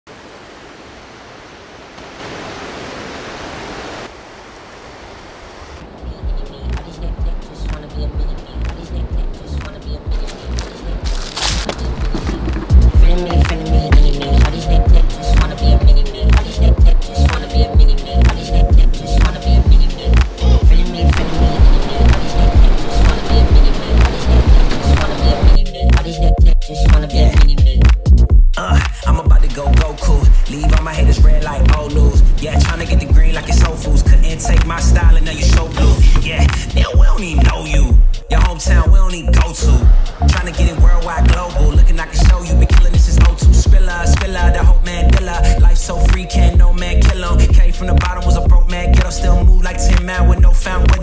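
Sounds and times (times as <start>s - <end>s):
river water rushing: 0.1s - 18.0s, 20.7s - 25.6s
hip-hop instrumental music: 5.8s - 51.0s.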